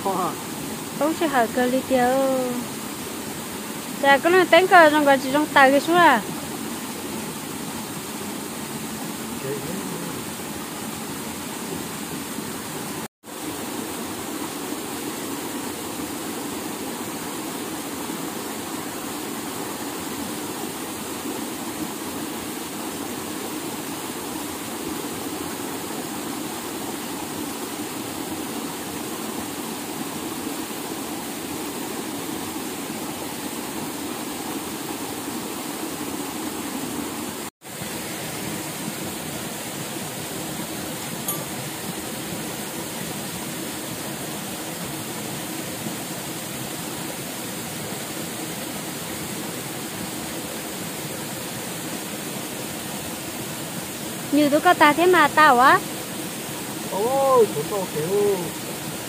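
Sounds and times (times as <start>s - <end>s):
running water rushing: 0.0s - 59.0s.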